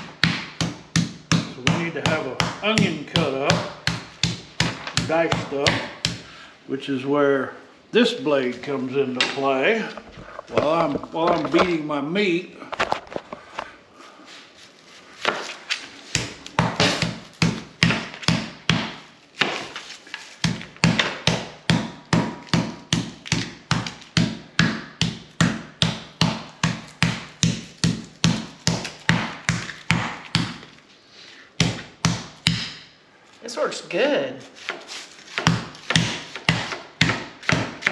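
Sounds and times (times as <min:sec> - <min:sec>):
meat hammer pounding: 0:00.0 - 0:06.4, 0:16.1 - 0:19.7, 0:20.4 - 0:30.7, 0:31.6 - 0:32.9, 0:34.6 - 0:37.9.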